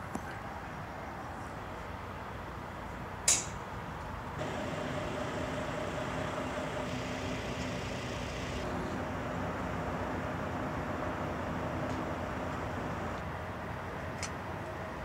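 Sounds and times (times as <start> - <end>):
engine running steadily: 4.4 - 15.0.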